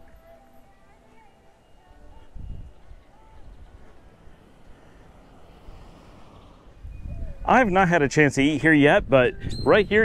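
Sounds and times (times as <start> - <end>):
wind buffeting microphone: 2.1 - 4.5, 5.6 - 10.0.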